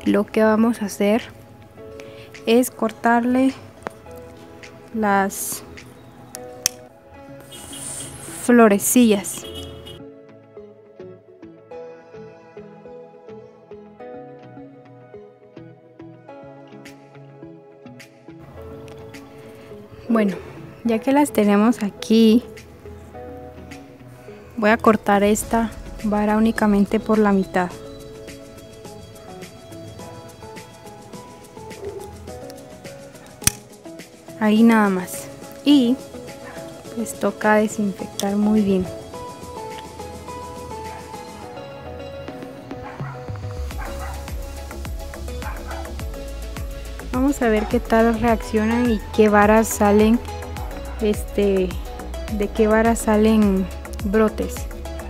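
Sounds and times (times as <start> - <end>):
soft background music: 0.0 - 55.0
scissors snipping: 33.2 - 33.7.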